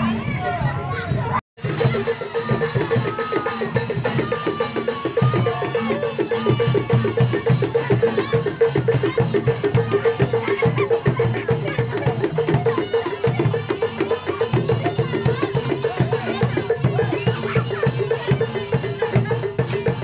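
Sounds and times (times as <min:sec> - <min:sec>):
drums: 0:00.0 - 0:20.0.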